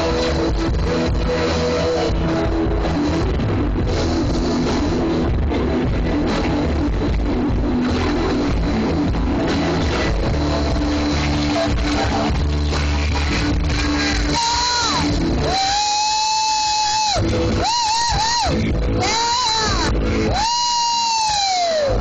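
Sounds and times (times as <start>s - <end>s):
loud rock music: 0.0s - 22.0s
person crying out high note: 14.4s - 22.0s.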